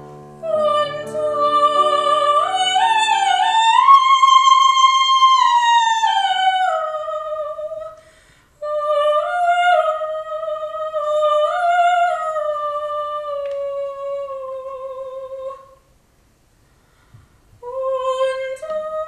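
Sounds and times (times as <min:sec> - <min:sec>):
female opera singer singing: 0:00.4 - 0:08.0, 0:08.6 - 0:15.8, 0:17.6 - 0:19.0.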